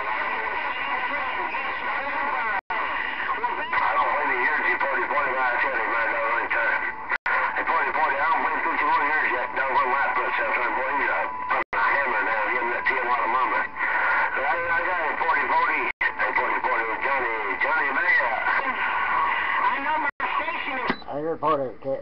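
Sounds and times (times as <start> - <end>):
garbled radio voices: 0.0 - 22.0
steady radio tones: 0.0 - 22.0.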